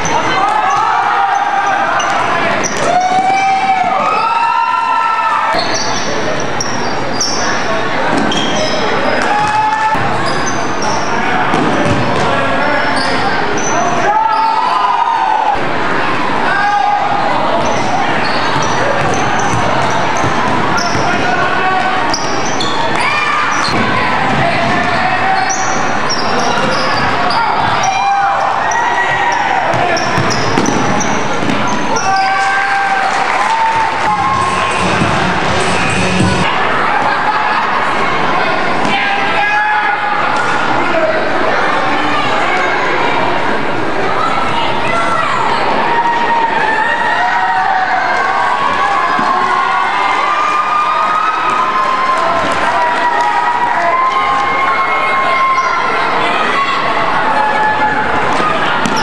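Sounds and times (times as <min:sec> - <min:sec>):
sneaker squeaks: 0:00.0 - 0:03.4, 0:05.5 - 0:14.8, 0:17.6 - 0:21.3, 0:22.0 - 0:32.4, 0:34.2 - 0:36.5, 0:55.4 - 0:56.0, 0:58.4 - 0:59.0
crowd chatter and shouts: 0:00.0 - 0:59.0
basketball bouncing: 0:11.5 - 0:12.3, 0:18.6 - 0:21.2, 0:29.1 - 0:31.8, 0:34.3 - 0:36.4.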